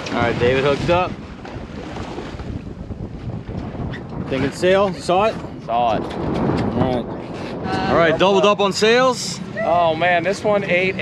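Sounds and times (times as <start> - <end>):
boat noise: 0.0 - 11.0
sea rushing: 0.0 - 11.0
wind buffeting microphone: 0.0 - 11.0.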